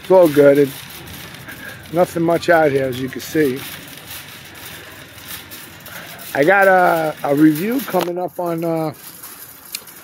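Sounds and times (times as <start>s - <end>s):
cart wheels rolling on asphalt: 0.0s - 10.0s.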